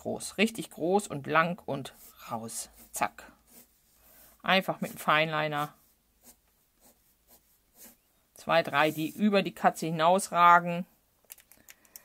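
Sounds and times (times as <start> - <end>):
pen scratching on paper: 1.8 - 9.4.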